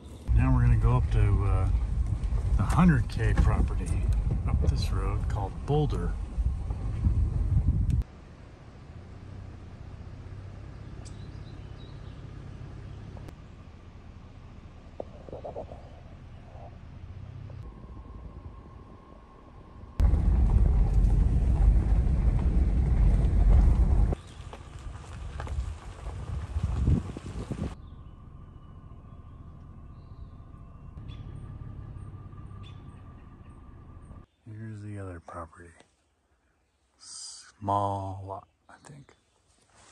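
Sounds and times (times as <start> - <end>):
vehicle rumbling on dirt road: 0.0 - 35.4.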